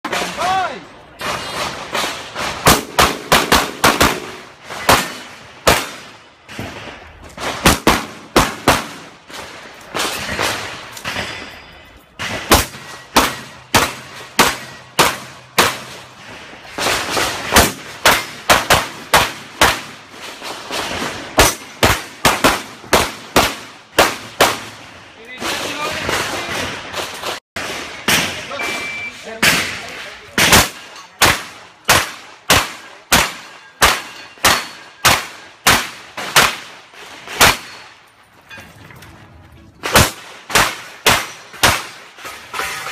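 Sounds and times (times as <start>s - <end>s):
pistol shots: 1.2s - 6.1s, 7.4s - 11.0s, 12.2s - 16.1s, 20.9s - 24.8s, 29.4s - 37.8s, 39.8s - 42.1s.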